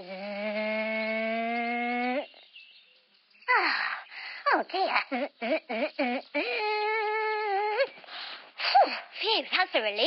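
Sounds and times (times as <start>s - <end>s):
woman's strained hum: 0.0s - 2.4s, 4.9s - 8.0s.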